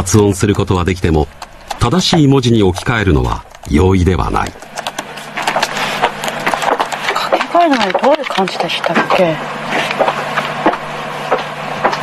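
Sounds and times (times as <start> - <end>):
laptop keyboard typing: 0.0 - 10.5.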